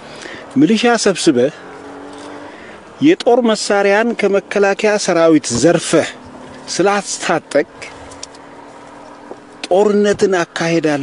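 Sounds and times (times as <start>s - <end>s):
man speaking: 0.6s - 1.6s, 3.0s - 8.0s, 9.6s - 11.0s.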